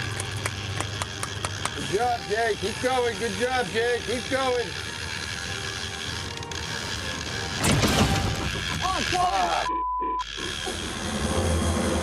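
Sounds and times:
fishing reel clicking and ratcheting: 0.0s - 10.9s.

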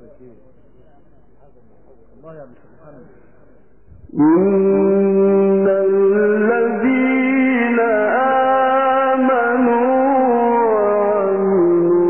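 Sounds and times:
man chanting recitation: 4.1s - 12.0s.

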